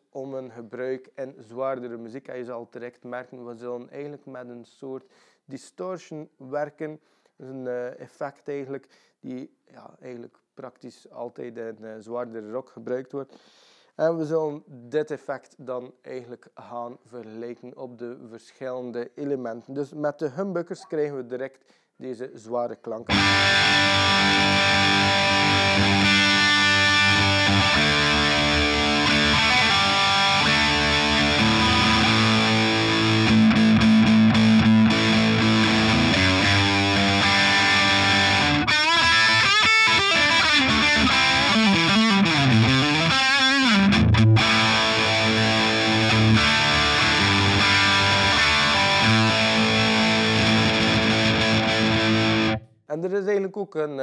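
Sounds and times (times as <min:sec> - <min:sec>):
distorted electric guitar: 0:23.1 - 0:52.6.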